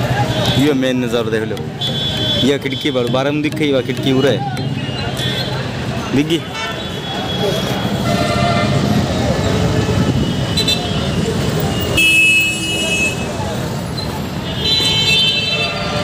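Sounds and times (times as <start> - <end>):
busy street traffic: 0.0 - 16.0
vehicle horns honking: 1.6 - 3.3, 4.1 - 13.4, 14.4 - 16.0.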